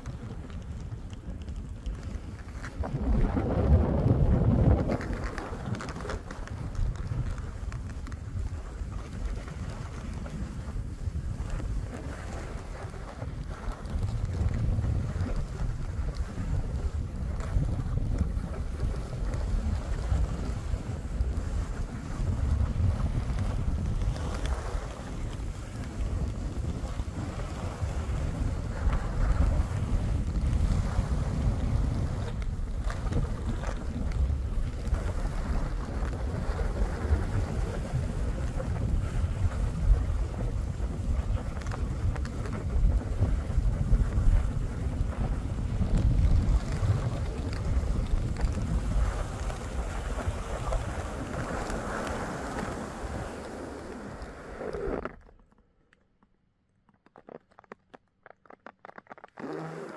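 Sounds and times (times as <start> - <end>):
wind buffeting microphone: 0.0 - 55.0
skis hissing through snow: 48.7 - 54.9.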